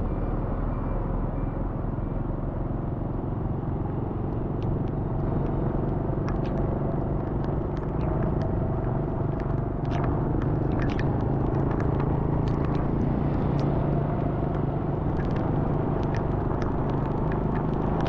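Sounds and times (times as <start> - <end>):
wind: 0.0 - 18.0
light ticks: 4.3 - 18.0.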